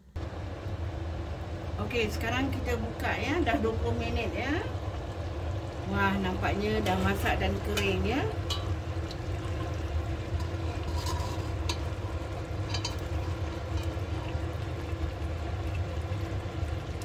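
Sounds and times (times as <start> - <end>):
steady low hum: 0.0 - 17.0
metal ladle scraping a pot: 6.8 - 14.2
ladle clinking against pot: 7.8 - 8.8, 12.6 - 14.0.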